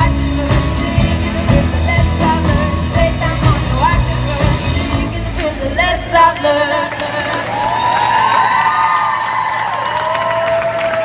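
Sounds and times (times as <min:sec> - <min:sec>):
scattered clapping: 0:06.4 - 0:11.0
crowd cheering and shouting: 0:07.0 - 0:11.0.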